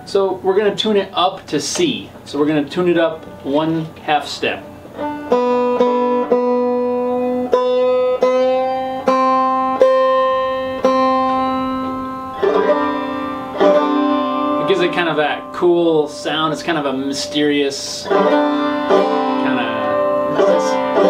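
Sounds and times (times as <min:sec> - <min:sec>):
banjo strings picked: 0:00.8 - 0:21.0.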